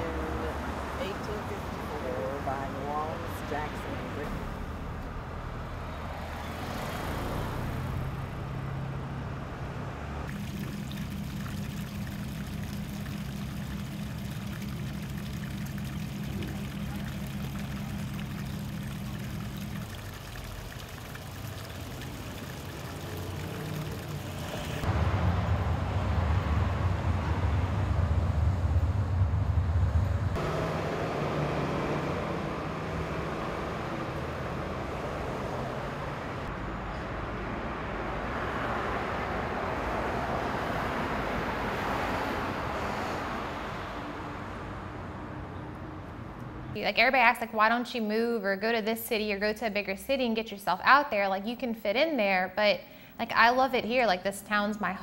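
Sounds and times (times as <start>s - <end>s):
low motor vehicle hum: 0.0s - 50.9s
heavy low rumble: 24.9s - 30.4s.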